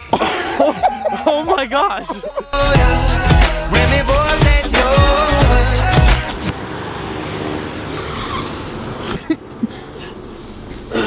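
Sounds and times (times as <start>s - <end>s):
intro music: 0.6s - 6.5s.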